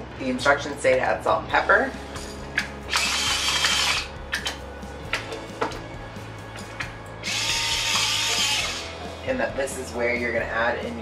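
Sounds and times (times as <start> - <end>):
pepper grinder grinding: 7.3 - 8.9.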